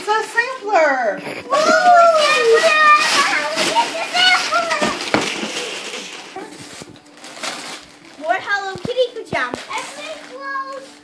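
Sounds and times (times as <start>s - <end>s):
wrapping paper rustling and tearing: 0.0s - 11.0s.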